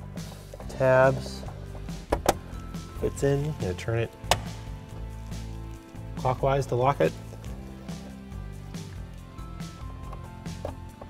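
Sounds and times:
quiet music bed: 0.0 - 11.0.

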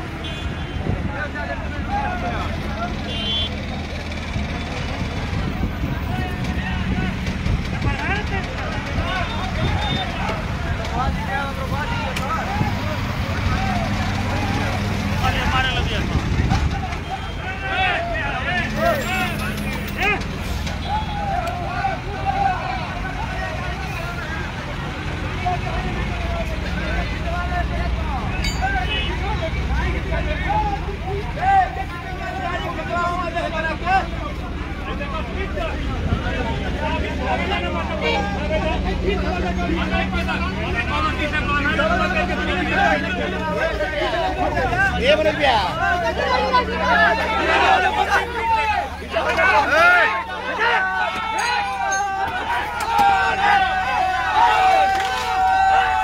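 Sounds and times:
diesel engine humming: 0.0 - 56.0
men talking: 0.7 - 56.0.

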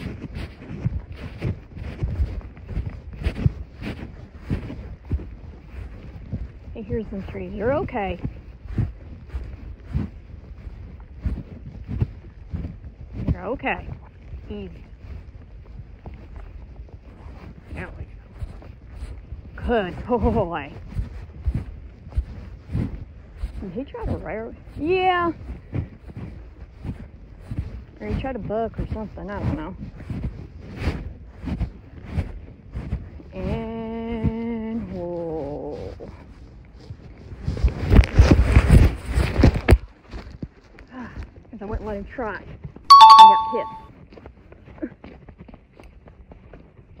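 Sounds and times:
horse walking soft thumps: 0.0 - 24.8
wind buffeting microphone: 0.0 - 39.6.

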